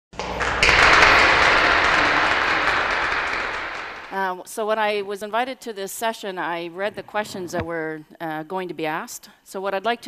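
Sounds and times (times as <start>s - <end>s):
audience applauding: 0.2s - 4.2s.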